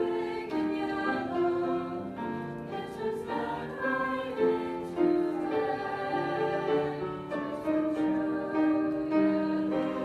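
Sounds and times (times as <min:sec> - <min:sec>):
choir singing held notes: 0:00.0 - 0:10.0
musical accompaniment: 0:00.0 - 0:10.0.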